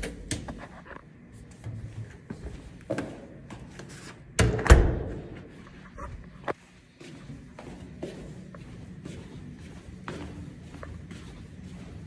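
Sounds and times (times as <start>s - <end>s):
footsteps: 0.4s - 4.2s, 5.2s - 12.0s.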